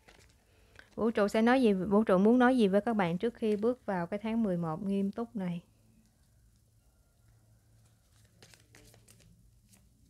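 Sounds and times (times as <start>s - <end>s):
soft clicks of paper cards: 0.0s - 1.0s, 5.9s - 6.7s, 7.8s - 10.0s
paper cards rustling: 0.0s - 1.3s, 7.8s - 10.0s.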